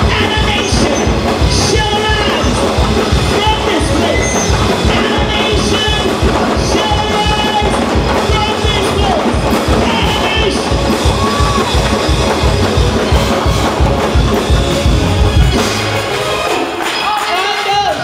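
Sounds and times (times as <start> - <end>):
congregation calling out: 0.0 - 12.0
drums and bass beat: 0.0 - 18.0.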